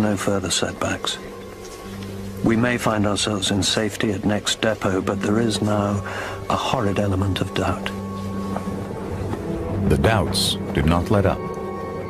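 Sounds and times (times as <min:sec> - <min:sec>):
low music drone: 0:00.0 - 0:12.0.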